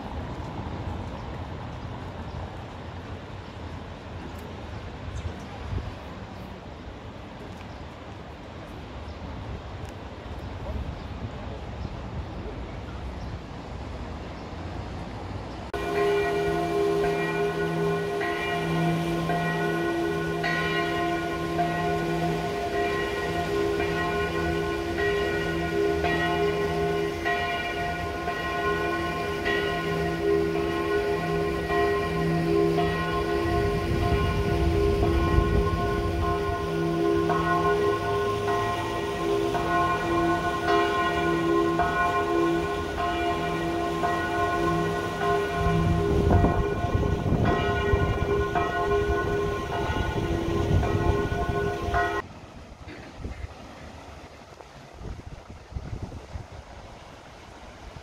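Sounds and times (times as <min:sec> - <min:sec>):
train rumbling over a bridge: 0:08.4 - 0:54.4
church bells pealing: 0:15.7 - 0:52.2.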